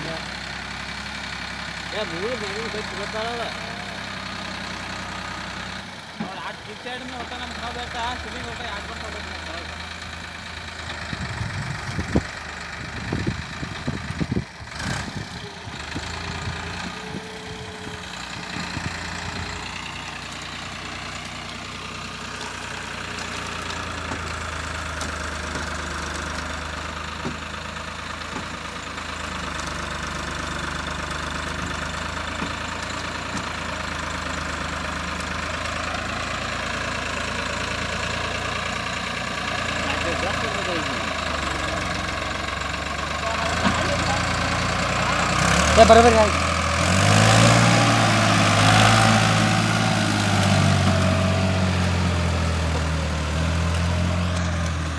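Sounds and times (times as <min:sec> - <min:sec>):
tractor diesel engine running: 0:00.0 - 0:54.9.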